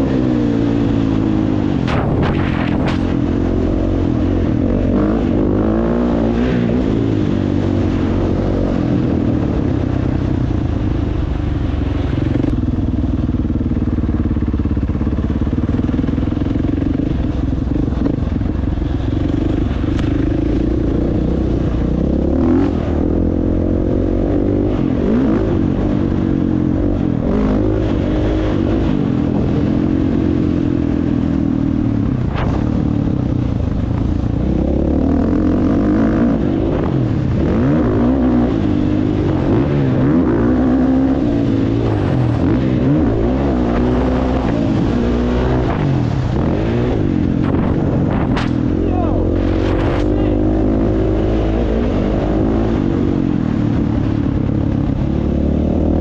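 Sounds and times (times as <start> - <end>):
dirt bike engine revving: 0.0 - 9.6, 34.4 - 54.2.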